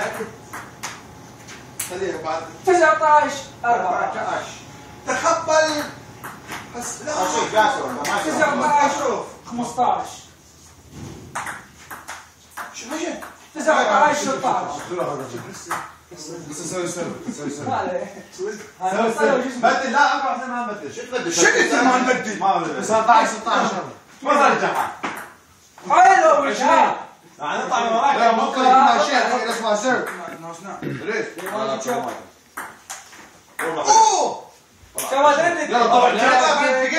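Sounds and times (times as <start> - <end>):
ping-pong ball clicks: 0.0 - 1.0, 5.8 - 6.7, 11.4 - 13.4, 31.4 - 33.8.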